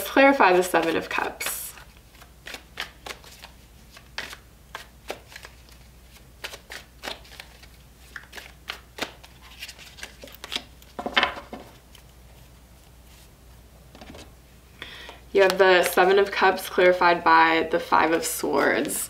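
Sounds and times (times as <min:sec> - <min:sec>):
cards being shuffled: 0:00.4 - 0:13.3, 0:15.0 - 0:16.2, 0:18.5 - 0:19.0
cards clattering: 0:06.4 - 0:12.0.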